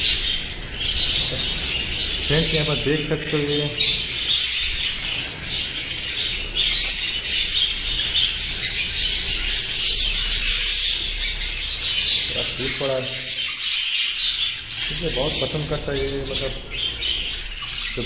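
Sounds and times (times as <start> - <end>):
budgerigars chattering: 0.0 - 18.0.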